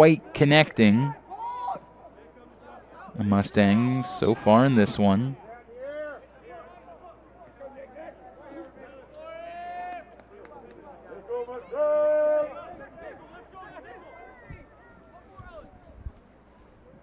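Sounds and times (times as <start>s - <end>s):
players shouting: 3.2s - 5.4s
faint chatter: 3.9s - 17.0s.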